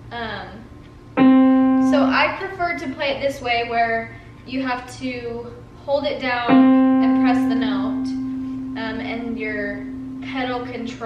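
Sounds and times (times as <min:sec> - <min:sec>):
digital piano single note: 0:01.2 - 0:02.4, 0:06.4 - 0:11.0.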